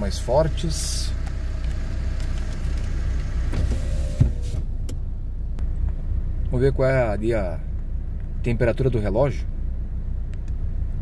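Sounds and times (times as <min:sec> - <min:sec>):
car idling rumble: 0:00.0 - 0:11.0.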